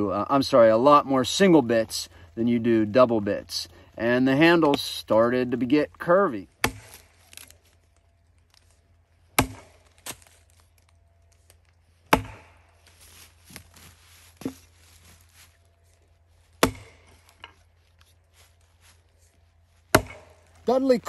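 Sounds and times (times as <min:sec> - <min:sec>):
axe chopping into a log: 0:06.6 - 0:07.5, 0:09.3 - 0:10.3, 0:12.1 - 0:12.6, 0:16.6 - 0:17.3, 0:19.9 - 0:20.4.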